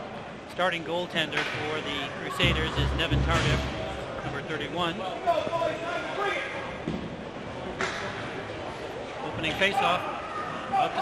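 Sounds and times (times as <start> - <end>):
indistinct voices talking: 2.3 - 4.6
sharp knock: 2.4 - 4.3.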